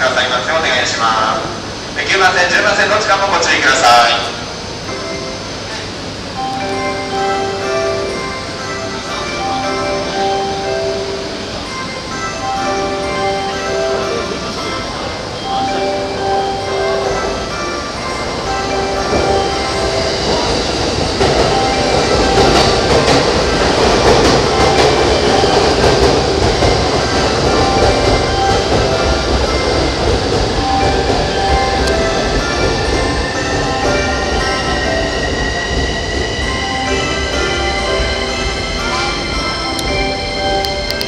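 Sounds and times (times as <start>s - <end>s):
train wheels rumbling on rails: 0.0s - 41.0s.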